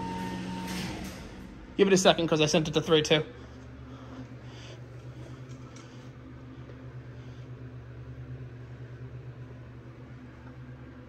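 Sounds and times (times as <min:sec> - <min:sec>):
elevator pump motor hum: 0:00.0 - 0:11.0.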